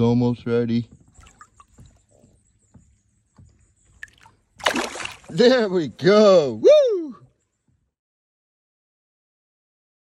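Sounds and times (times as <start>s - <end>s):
water sloshing and trickling: 0.9s - 6.0s
fish splashing: 4.0s - 5.5s.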